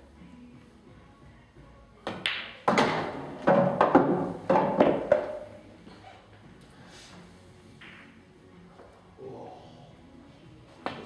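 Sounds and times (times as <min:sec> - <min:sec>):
pool balls clicking: 0:02.0 - 0:05.6
cue tip striking ball: 0:02.1 - 0:05.5.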